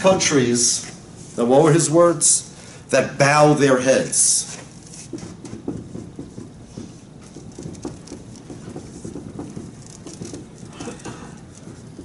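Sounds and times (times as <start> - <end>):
marker writing on whiteboard: 4.2 - 12.0.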